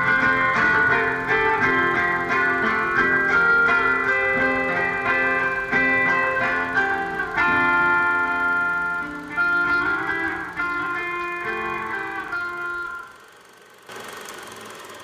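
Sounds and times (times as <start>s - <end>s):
guitar chords ringing: 0.0s - 13.4s
faint mechanical whirr with hum: 0.0s - 15.0s.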